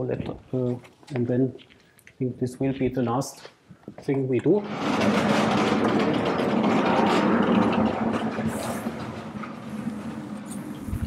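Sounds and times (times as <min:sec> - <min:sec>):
chalkboard panels rumbling along tracks: 0:04.5 - 0:11.0.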